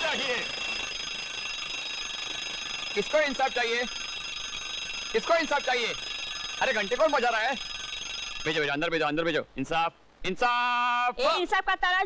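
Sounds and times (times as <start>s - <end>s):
alarm clock bell ringing: 0.0s - 8.9s.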